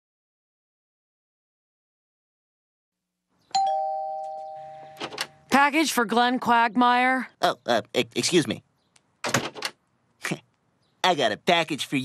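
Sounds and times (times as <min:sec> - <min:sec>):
two-tone doorbell chime: 0:03.6 - 0:05.0.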